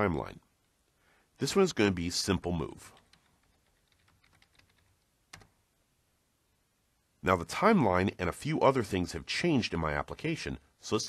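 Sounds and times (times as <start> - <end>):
computer keyboard typing: 2.9 - 5.6.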